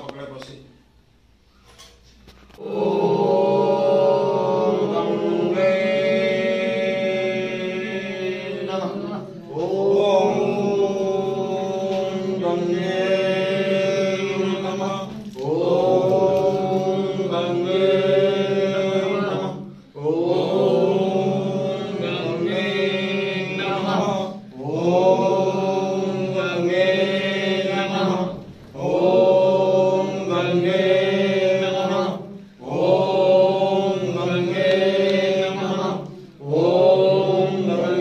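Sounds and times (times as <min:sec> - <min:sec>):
devotional chanting: 0:01.6 - 0:38.0.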